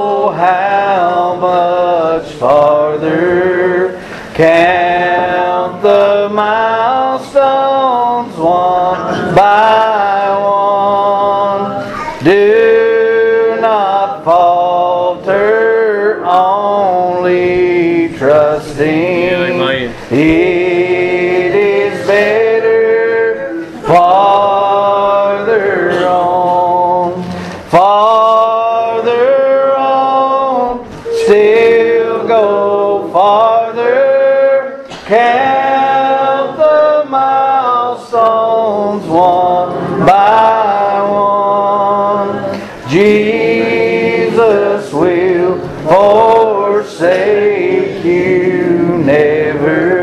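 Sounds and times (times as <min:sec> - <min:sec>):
person singing: 0:00.0 - 0:50.0.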